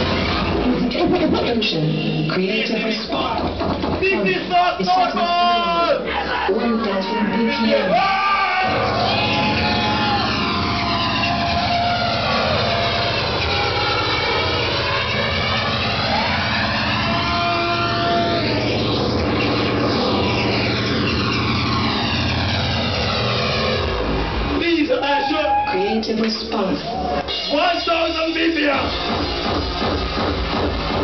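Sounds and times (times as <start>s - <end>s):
hardcore techno music: 0.0s - 31.0s.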